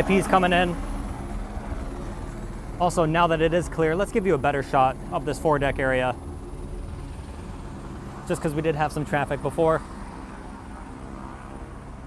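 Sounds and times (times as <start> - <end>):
low outdoor rumble: 0.0 - 9.9.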